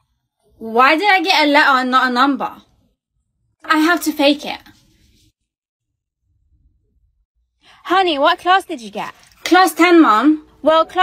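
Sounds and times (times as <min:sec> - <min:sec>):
woman speaking: 0:00.6 - 0:02.7, 0:03.6 - 0:04.8, 0:07.7 - 0:11.0.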